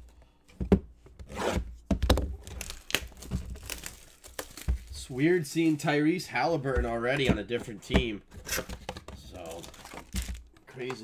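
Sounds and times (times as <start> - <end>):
plastic wrapping tearing and crinkling: 2.3 - 5.9.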